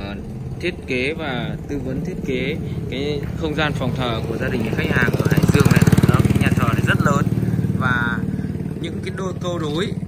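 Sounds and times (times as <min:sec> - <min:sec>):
small engine running: 0:00.0 - 0:10.0.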